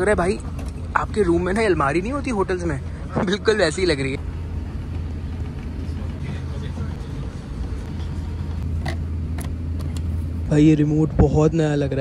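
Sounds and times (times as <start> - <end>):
airplane cabin hum: 0.0 - 11.5.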